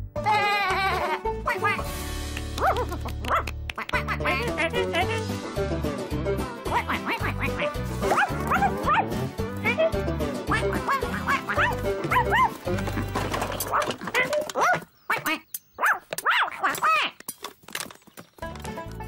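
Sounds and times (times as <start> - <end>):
bouncy cartoon music: 0.0 - 17.2, 18.4 - 19.0
cartoon puppy yapping: 0.3 - 1.9, 2.6 - 5.2, 6.7 - 12.6, 13.7 - 17.2
cartoon duckling quacking: 1.4 - 1.9, 2.8 - 5.2, 6.7 - 9.0, 10.5 - 12.4.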